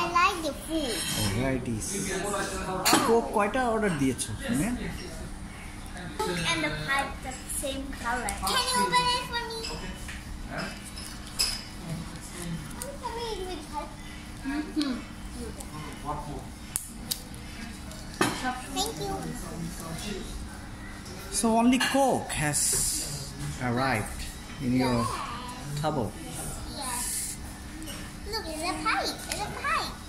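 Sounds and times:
child's voice: 0:00.0 - 0:01.3, 0:06.5 - 0:09.8, 0:12.8 - 0:14.0, 0:18.7 - 0:19.3, 0:26.6 - 0:27.4, 0:28.2 - 0:30.0
restaurant murmur: 0:00.0 - 0:30.0
tableware clinking on a table: 0:00.9 - 0:01.4, 0:18.1 - 0:18.6.

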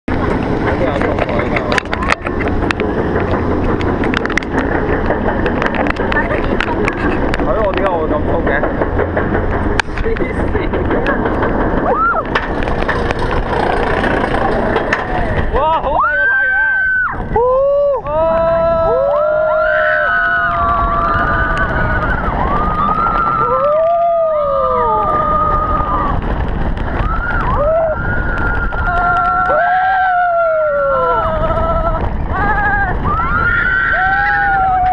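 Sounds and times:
roller coaster rumble: 0:00.0 - 0:34.9
riders screaming: 0:11.8 - 0:12.4, 0:13.4 - 0:34.9.

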